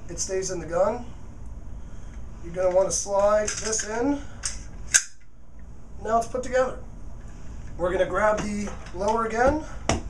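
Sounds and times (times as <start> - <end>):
metal-on-metal snap: 3.4 - 5.3.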